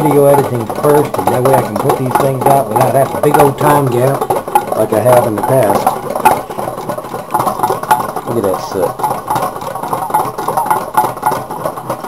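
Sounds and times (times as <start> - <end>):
small engine clicking and rattling: 0.0 - 12.0.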